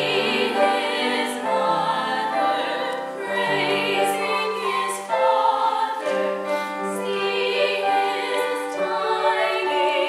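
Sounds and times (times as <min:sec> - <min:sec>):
women singing a duet: 0:00.0 - 0:10.0.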